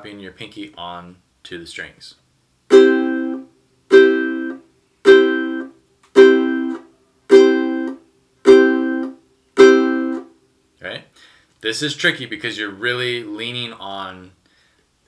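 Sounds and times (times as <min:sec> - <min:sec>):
ukulele strums muted sharply: 0:02.7 - 0:10.2.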